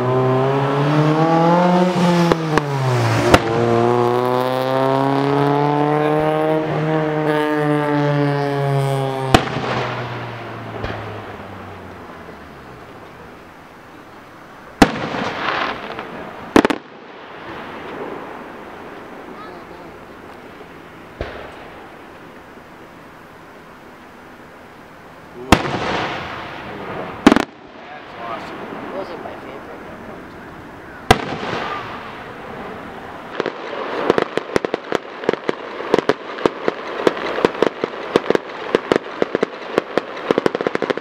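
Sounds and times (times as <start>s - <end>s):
low drone sinking in pitch: 0.0s - 9.3s
firework bangs: 0.0s - 23.0s, 25.4s - 41.0s.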